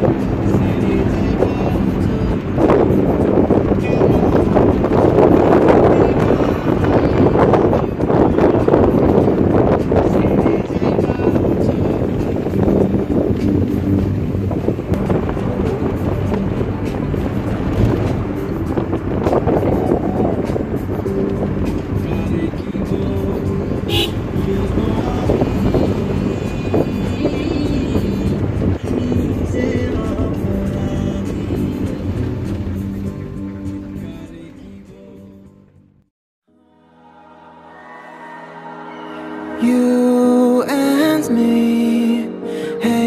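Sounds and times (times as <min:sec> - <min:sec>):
music playing: 0:00.0 - 0:35.9, 0:36.5 - 0:43.0
car road and engine noise: 0:00.0 - 0:36.0.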